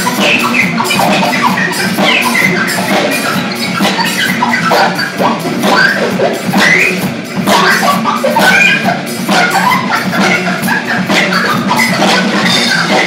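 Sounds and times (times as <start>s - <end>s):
drum strikes: 0.0s - 13.0s.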